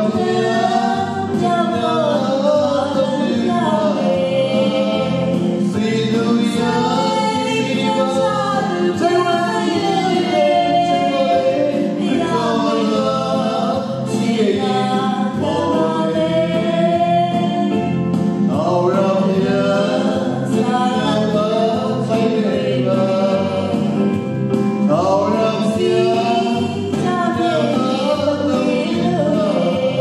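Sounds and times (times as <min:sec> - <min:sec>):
man and woman singing gospel: 0:00.0 - 0:30.0
musical accompaniment: 0:00.0 - 0:30.0.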